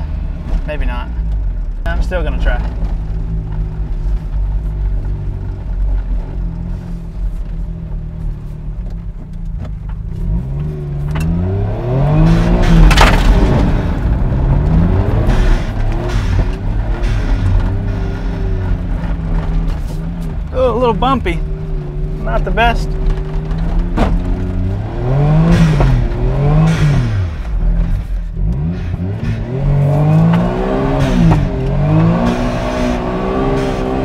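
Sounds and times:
small car engine revving: 10.0 - 20.4, 21.4 - 34.0.

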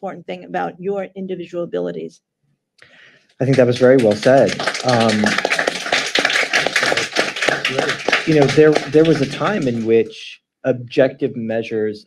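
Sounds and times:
small group clapping: 2.8 - 10.0.

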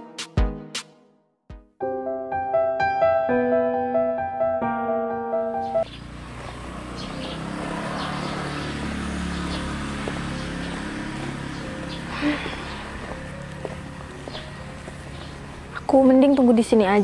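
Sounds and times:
low rumble of distant traffic: 5.4 - 17.0.

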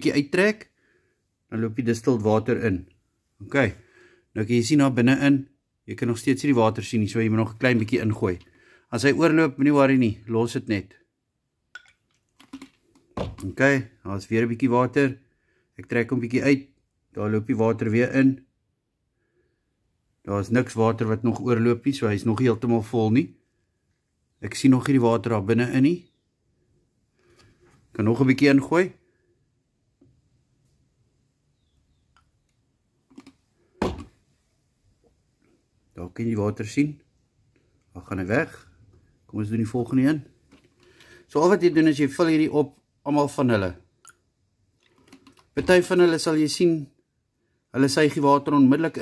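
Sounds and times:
plastic bottle clicks and taps: 11.8 - 13.5, 33.1 - 34.2.

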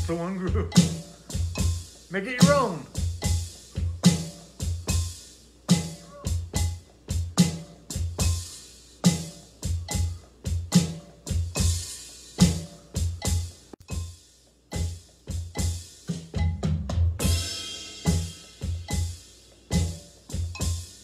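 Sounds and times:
electronic drum kit groove: 0.0 - 21.0.

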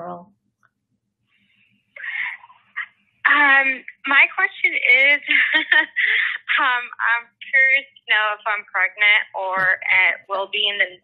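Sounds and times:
breathy voice over telephone: 2.0 - 2.5.

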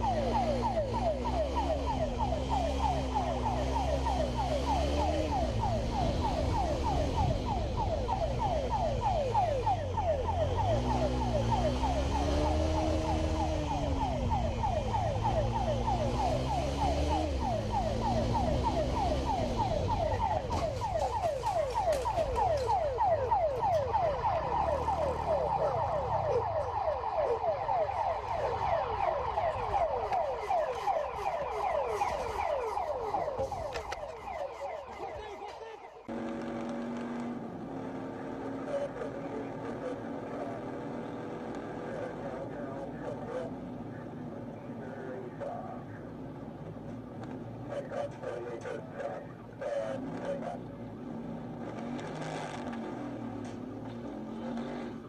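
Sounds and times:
police siren sweeps: 0.0 - 37.1.

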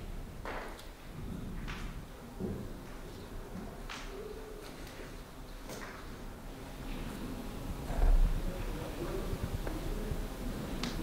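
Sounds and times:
pigeon cooing: 4.1 - 4.8.

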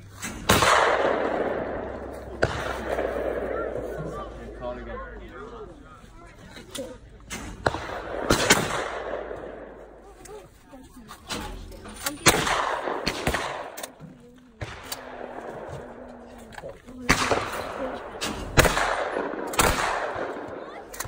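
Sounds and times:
shotgun shots with echo: 0.2 - 4.3, 7.3 - 9.8, 12.2 - 13.9, 17.0 - 20.6.

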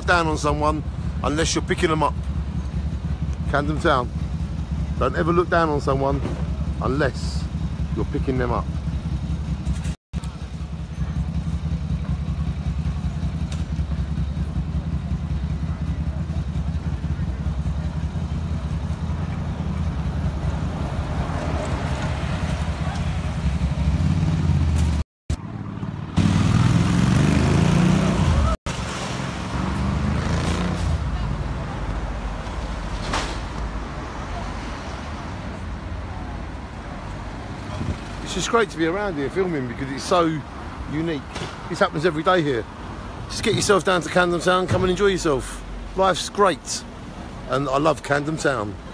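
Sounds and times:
low traffic rumble: 0.0 - 48.9
cars passing: 11.0 - 48.9.

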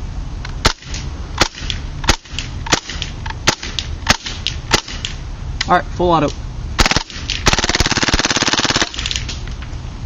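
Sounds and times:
airsoft gun shots: 0.6 - 5.2, 6.8 - 9.4.

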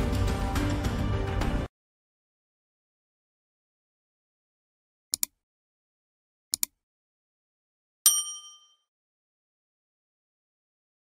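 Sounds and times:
bright bell ding: 8.1 - 8.9.

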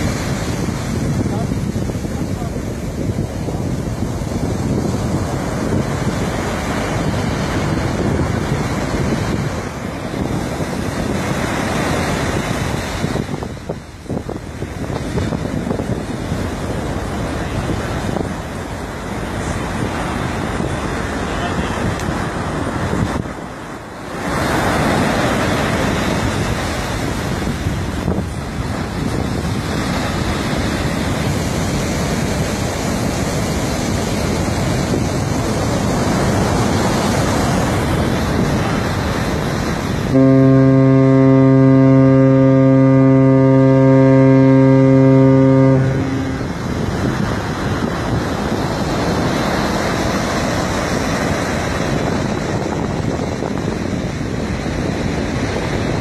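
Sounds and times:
surf breaking: 0.0 - 56.0
wind on microphone: 0.0 - 56.0
ship's horn deep blast: 35.6 - 50.2.

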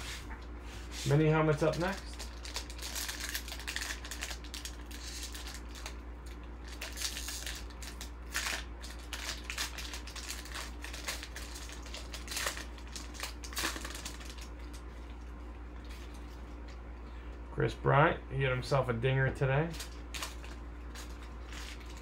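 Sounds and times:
foil wrapper crinkling: 1.0 - 15.1, 19.6 - 22.0.

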